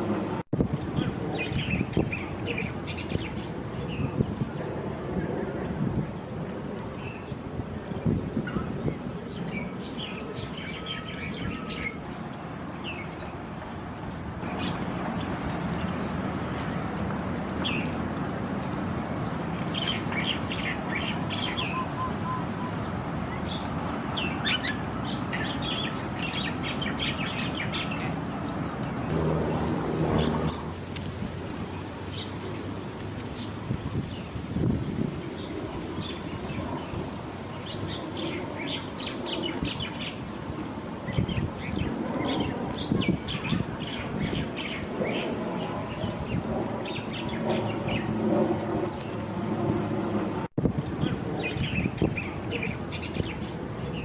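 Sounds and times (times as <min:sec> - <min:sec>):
small birds chirping: 0:14.4 - 0:29.1.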